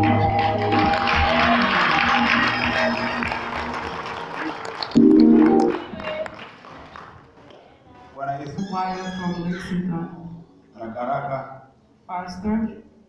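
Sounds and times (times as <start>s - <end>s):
live church band music: 0.0s - 4.0s, 4.9s - 6.0s
congregation applause: 0.0s - 8.5s.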